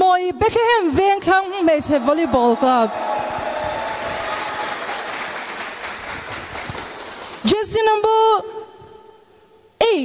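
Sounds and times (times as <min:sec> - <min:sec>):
crowd applause: 0:01.6 - 0:07.4.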